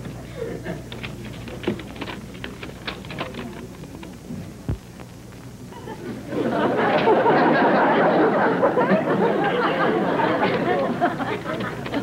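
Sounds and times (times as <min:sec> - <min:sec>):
steady low hum: 0:00.0 - 0:12.0
studio audience laughter: 0:05.7 - 0:12.0.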